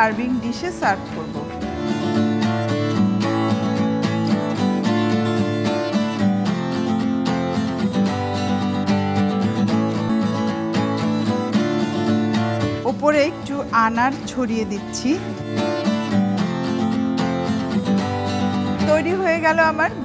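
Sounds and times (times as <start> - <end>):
plucked acoustic guitar music: 0.0 - 20.0.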